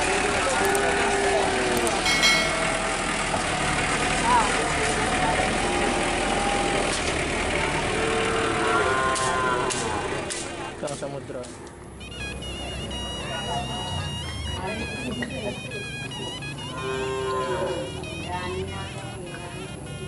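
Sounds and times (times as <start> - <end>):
crowd voices and calls: 0.0 - 20.0
truck engine running: 0.0 - 20.0.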